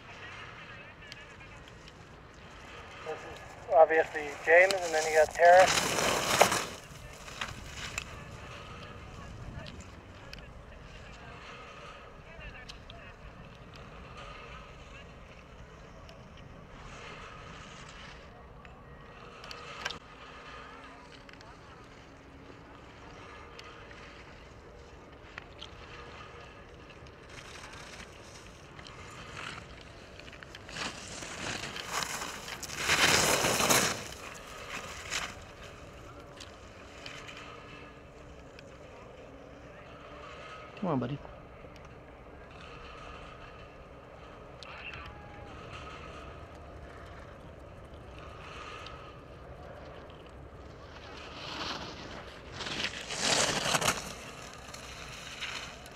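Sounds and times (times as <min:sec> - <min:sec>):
ski edges scraping on snow: 0:00.0 - 0:15.0, 0:25.1 - 0:41.0, 0:49.8 - 0:55.9.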